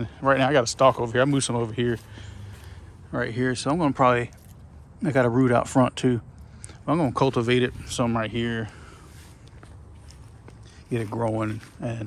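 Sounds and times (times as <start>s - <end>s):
footsteps on dry grass: 0.0s - 5.4s, 6.8s - 12.0s.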